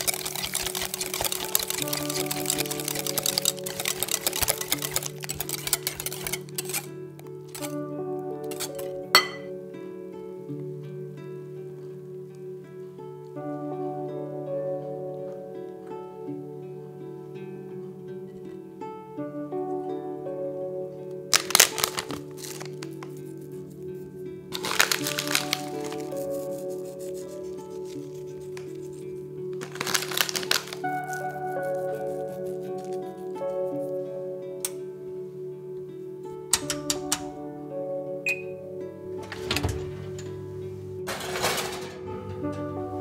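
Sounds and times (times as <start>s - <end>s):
dried herbs crackling between fingers: 0.0s - 6.9s, 21.3s - 34.0s
whisk ticking against glass bowl: 0.0s - 6.9s
background music: 0.0s - 43.0s.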